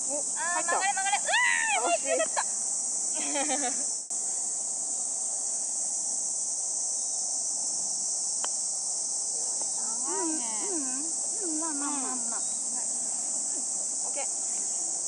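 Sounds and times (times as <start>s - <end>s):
high-pitched insect chorus: 0.0s - 15.0s.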